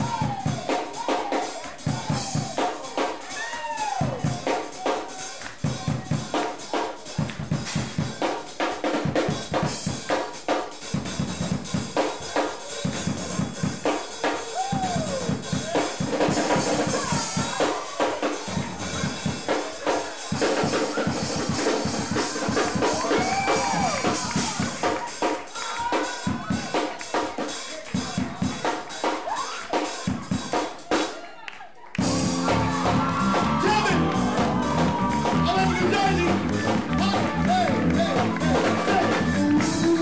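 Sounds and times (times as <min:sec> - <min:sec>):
drum kit: 0:00.0 - 0:31.2, 0:32.0 - 0:40.0
bass guitar: 0:32.0 - 0:40.0.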